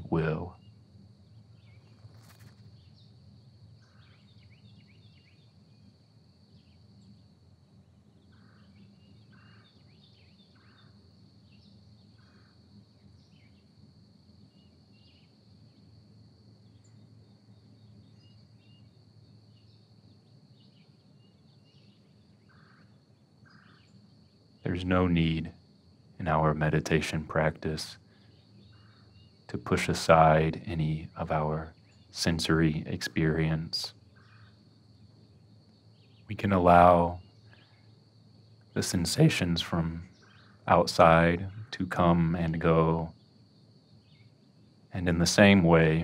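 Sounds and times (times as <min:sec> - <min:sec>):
faint bird calls: 0:00.0 - 0:07.2, 0:08.2 - 0:13.7, 0:20.5 - 0:25.6, 0:26.2 - 0:46.0.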